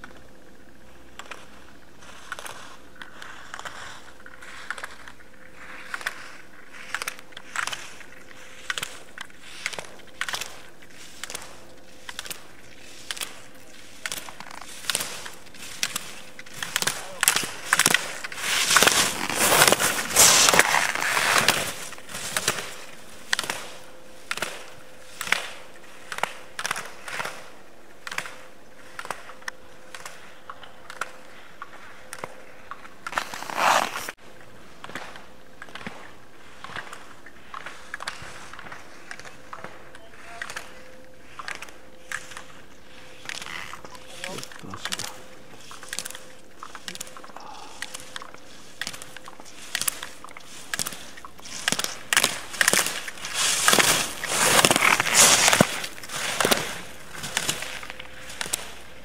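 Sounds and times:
skis scraping on hard snow: 1.2s - 27.5s, 32.7s - 34.2s, 47.7s - 59.0s.

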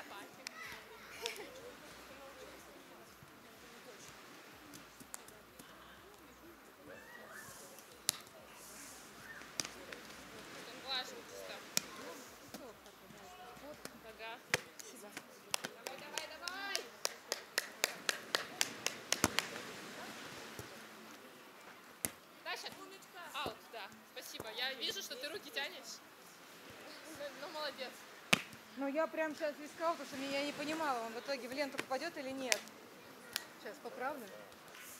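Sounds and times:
distant voices: 0.0s - 25.0s
volleyball hits: 28.3s - 28.6s.

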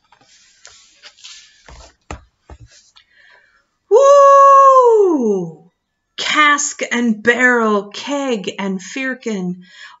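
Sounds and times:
book handling rustles and knocks: 0.0s - 3.1s
woman calling out woo: 3.9s - 5.6s.

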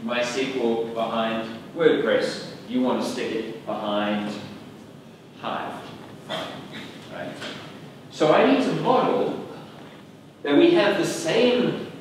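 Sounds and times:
man lecturing: 0.0s - 4.6s, 5.4s - 6.0s, 7.1s - 9.8s, 10.4s - 12.0s.

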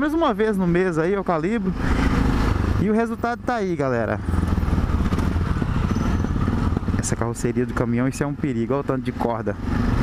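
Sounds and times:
motorcycle engine running: 1.4s - 10.0s.

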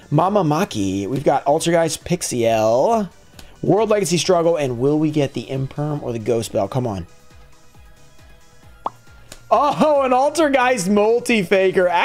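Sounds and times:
background music with low beat: 0.0s - 12.0s
rising bloop pop effect: 8.8s - 9.0s.

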